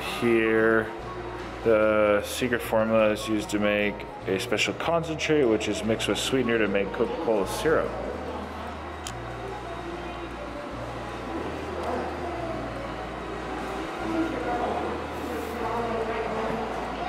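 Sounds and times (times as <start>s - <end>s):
faint indistinct voices: 0.0s - 17.0s.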